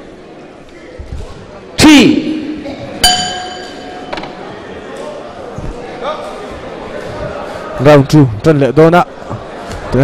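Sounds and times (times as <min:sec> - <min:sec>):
crowd hum: 0:00.0 - 0:10.0
boxing bell ringing: 0:03.0 - 0:04.2.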